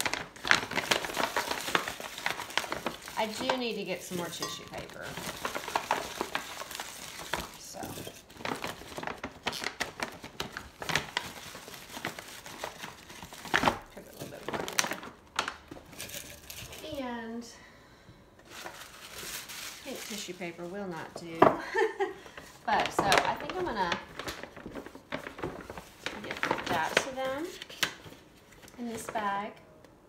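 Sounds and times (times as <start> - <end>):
paper and packaging rustling: 0.0 - 17.1, 18.4 - 29.5.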